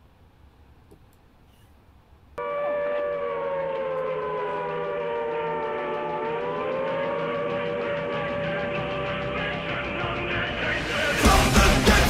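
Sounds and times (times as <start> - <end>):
air-raid siren wailing: 2.4 - 10.8.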